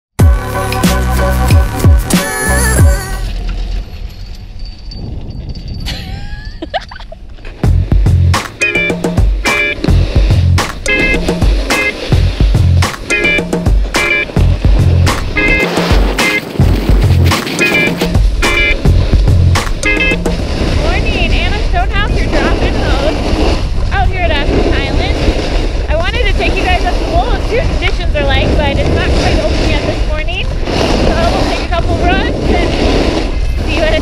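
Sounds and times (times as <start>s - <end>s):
music with steady beat: 0.2s - 3.1s, 7.6s - 20.5s
wind on microphone: 4.7s - 34.0s
snow scraping under rider: 9.5s - 34.0s.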